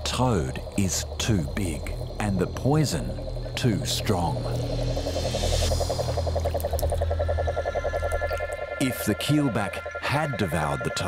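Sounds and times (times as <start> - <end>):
frog trilling: 0.0 - 11.0
steady low hum: 0.0 - 11.0.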